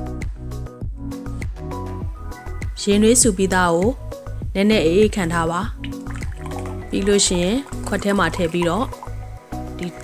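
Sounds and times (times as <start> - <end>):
background music: 0.0 - 10.0
water pouring into glass mug: 5.8 - 10.0
person talking: 6.9 - 9.0.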